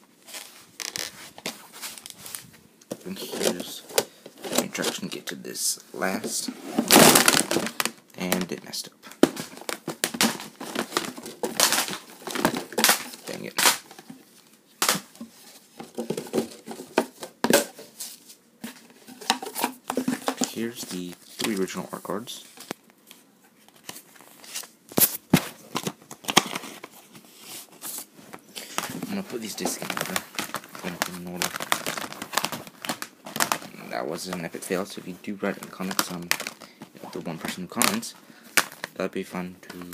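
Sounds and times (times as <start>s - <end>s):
rustling cardboard and paper: 0.2s - 5.3s, 6.0s - 39.0s
packaging crinkles: 9.2s - 14.2s, 25.7s - 33.8s, 35.4s - 39.0s.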